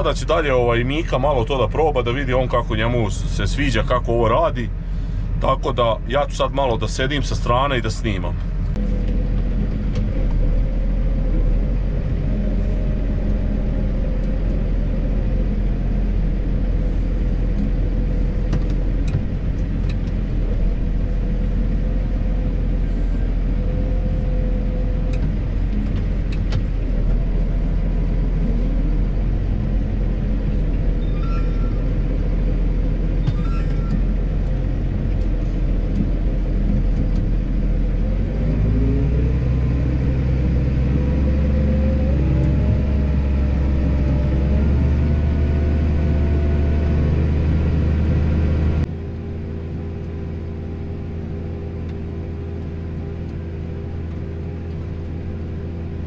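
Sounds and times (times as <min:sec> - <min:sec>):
tractor diesel engine under load: 0:00.0 - 0:56.0.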